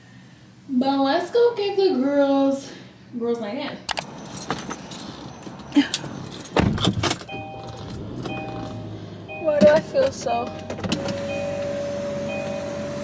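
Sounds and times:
keys jangling: 3.9s - 8.8s
heavy thump: 6.5s - 7.2s
car warning chime beeping: 7.2s - 13.0s.

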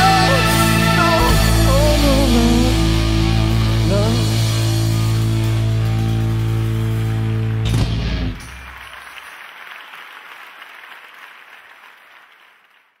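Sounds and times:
rock band final chord: 0.0s - 8.7s
audience applause: 6.8s - 13.0s.

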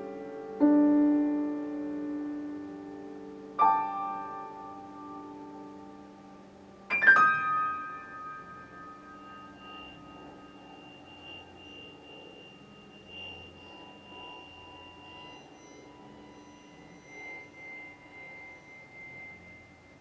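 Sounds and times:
electronic sine tones: 0.0s - 20.0s
piano chord ringing: 0.0s - 20.0s.

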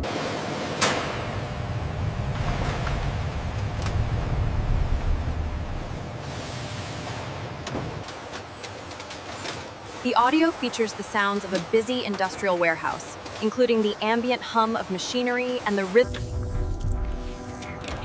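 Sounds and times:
low rumble of machinery: 0.0s - 18.0s.

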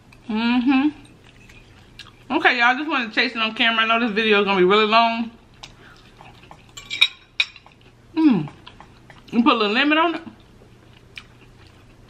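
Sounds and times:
metal fork clinking on plate: 6.5s - 7.7s.

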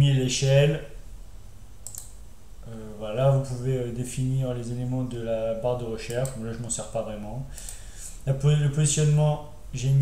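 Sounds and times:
faint low background hum: 0.0s - 10.0s
computer mouse click: 1.8s - 2.2s, 6.0s - 6.7s, 7.6s - 7.8s.

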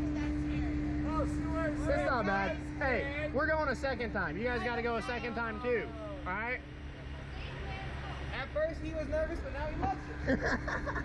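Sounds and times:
steady machine hum: 0.0s - 11.0s
people laughing: 10.0s - 11.0s.

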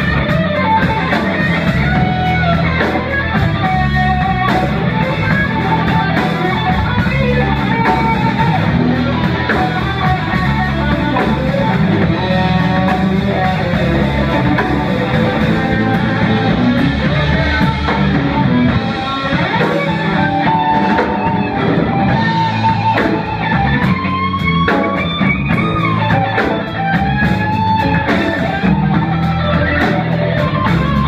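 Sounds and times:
drum kit: 0.0s - 31.0s
electric bass: 0.0s - 31.0s
electric guitar: 0.0s - 31.0s.

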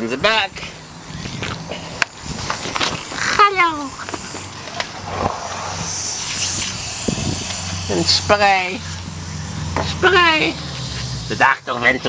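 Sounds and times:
hiss: 0.0s - 12.0s
steady low hum: 0.0s - 12.0s.

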